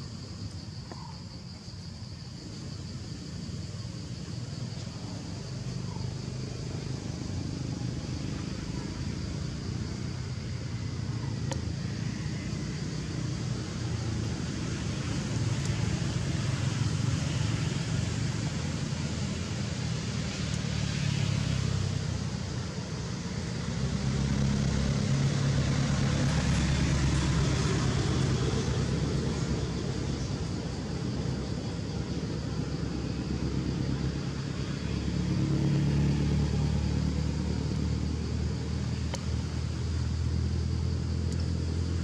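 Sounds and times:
outdoor background rumble: 0.0 - 42.0.

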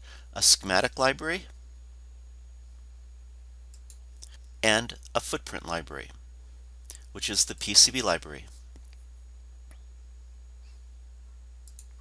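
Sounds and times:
faint background hiss: 0.0 - 12.0
steady low hum: 0.0 - 12.0
computer mouse clicks: 3.7 - 4.4, 11.6 - 12.0.

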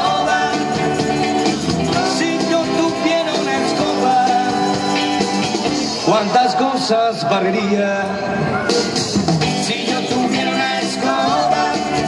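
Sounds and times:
live rock and roll band: 0.0 - 12.0.

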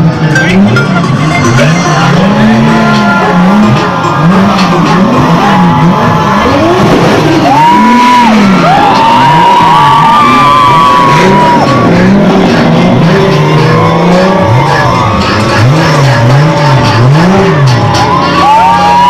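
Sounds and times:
sports car engines revving: 0.0 - 19.0.

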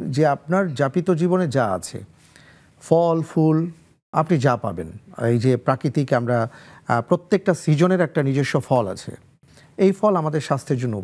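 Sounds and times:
man talking: 0.0 - 2.1, 2.8 - 9.2, 9.8 - 11.0.

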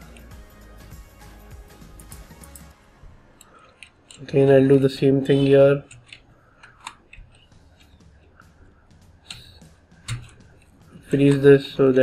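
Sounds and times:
computer keys and mouse clicks: 5.8 - 8.5, 9.2 - 10.7.

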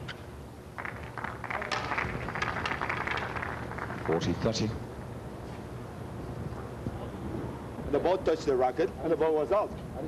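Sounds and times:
low background hum and hiss: 0.0 - 10.0.

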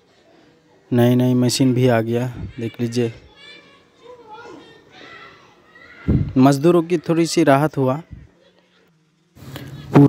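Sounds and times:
faint distant voices calling: 0.0 - 10.0
low background murmur: 0.0 - 10.0.

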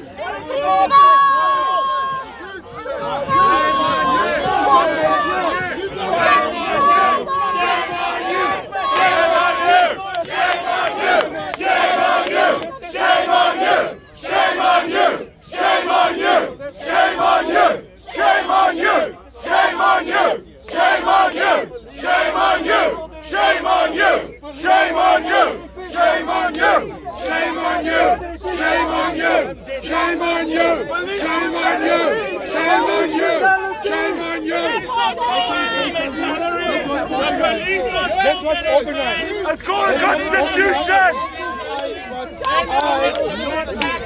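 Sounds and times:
crowd chanting in unison: 0.0 - 44.0.

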